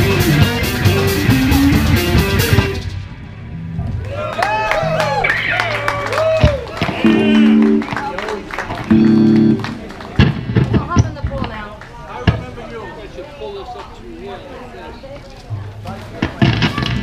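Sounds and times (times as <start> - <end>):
loud guitar and bass chords: 0.0 - 8.1, 8.8 - 10.0
crowd voices: 0.0 - 17.0.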